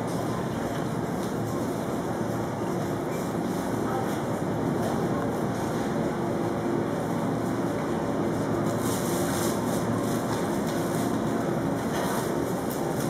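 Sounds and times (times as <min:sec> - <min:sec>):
supermarket background noise: 0:00.0 - 0:13.0
faint murmur of voices: 0:02.9 - 0:07.0.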